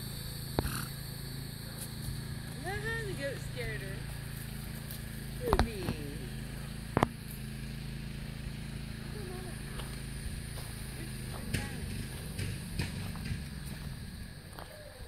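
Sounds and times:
low motor hum: 0:00.0 - 0:15.0.

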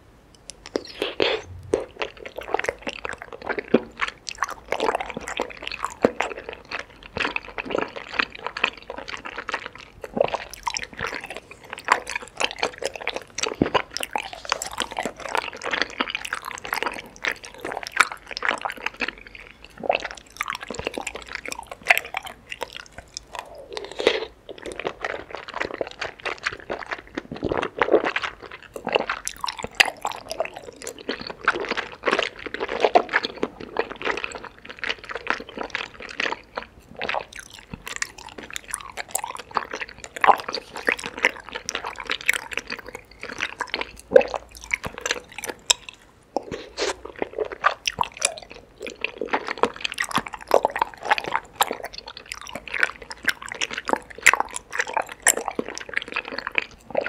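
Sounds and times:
person chewing sticky food: 0:00.4 - 0:57.0.

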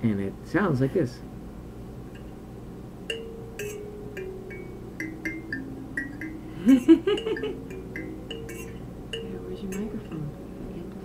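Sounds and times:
kalimba notes plucked: 0:03.1 - 0:11.0.

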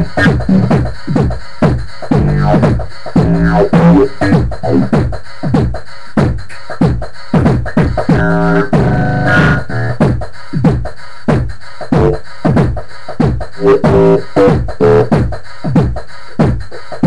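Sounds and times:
held synth notes: 0:03.2 - 0:04.8, 0:08.1 - 0:10.0.

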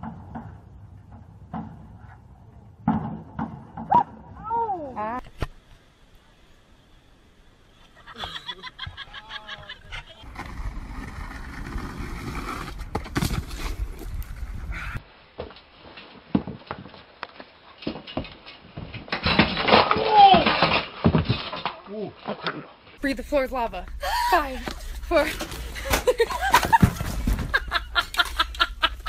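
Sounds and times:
voices: 0:08.1 - 0:10.2
loud shout: 0:19.9 - 0:20.5.

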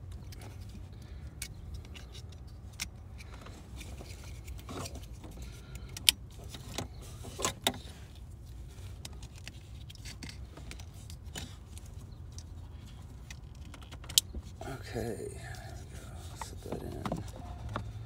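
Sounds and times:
low steady hum: 0:14.4 - 0:18.0.

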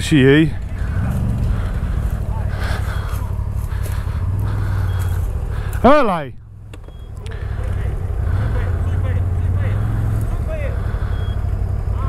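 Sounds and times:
quad bike engine running: 0:00.0 - 0:12.0.

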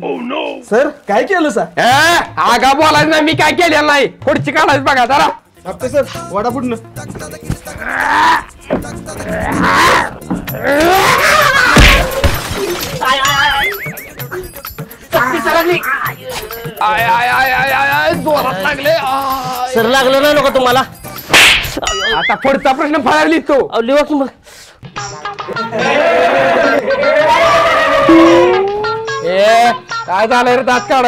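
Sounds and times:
background music: 0:00.0 - 0:31.0
person vocalizing: 0:07.7 - 0:12.2, 0:28.0 - 0:29.3
quavering bleat-like cry: 0:09.2 - 0:11.7
loud hand slap: 0:21.3 - 0:21.8.

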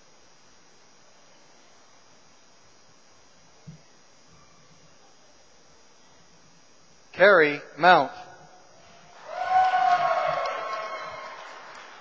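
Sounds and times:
echoing shout in a hall: 0:08.9 - 0:12.0.

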